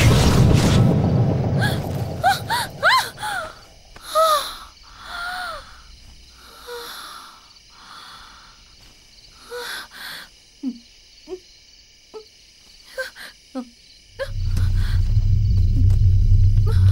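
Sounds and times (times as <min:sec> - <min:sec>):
woman crying out: 0:01.6 - 0:05.6
woman moaning: 0:01.6 - 0:05.8, 0:12.9 - 0:15.9, 0:16.6 - 0:16.9
woman breathing heavily: 0:01.6 - 0:10.6, 0:14.2 - 0:15.9.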